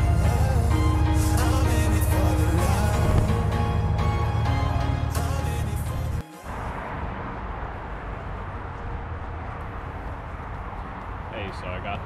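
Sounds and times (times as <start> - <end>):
background music: 0.0 - 7.5
outdoor background rumble: 0.0 - 12.0
man talking: 11.3 - 12.0.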